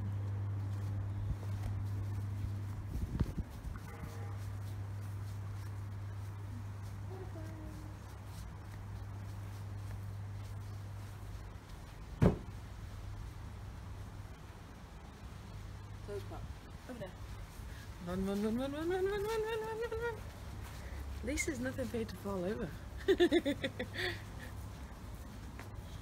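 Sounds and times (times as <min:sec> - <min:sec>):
steady low hum: 0:00.0 - 0:26.0
sharp knock: 0:12.2 - 0:12.5
soft knocks: 0:12.2 - 0:12.5.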